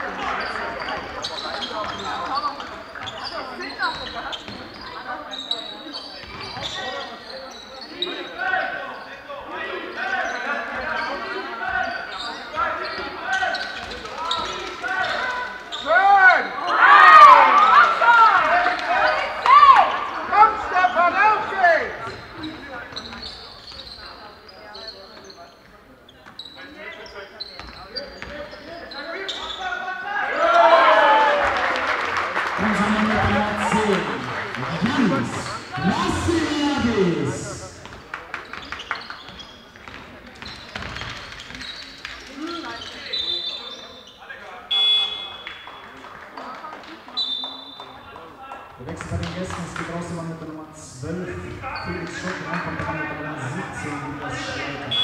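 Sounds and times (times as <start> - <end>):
sneakers squeaking: 0.0 - 17.3, 18.9 - 30.1, 32.8 - 50.1, 51.0 - 55.0
players calling out: 26.4 - 38.0, 48.7 - 55.0
basketball bouncing on court: 37.8 - 41.8.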